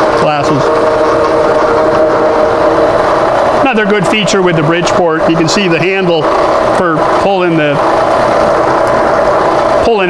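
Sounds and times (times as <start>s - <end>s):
milling machine whirring: 0.0s - 10.0s.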